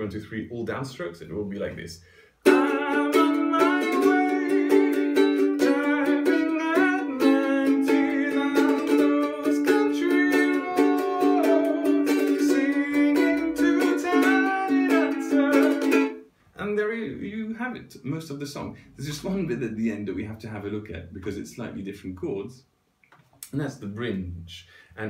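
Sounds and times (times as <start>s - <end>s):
ukulele strumming: 2.4s - 16.3s
man singing: 2.5s - 16.2s.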